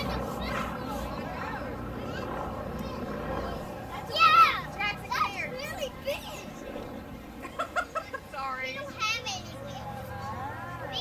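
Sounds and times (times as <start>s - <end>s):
children shouting and squealing: 0.0s - 8.1s.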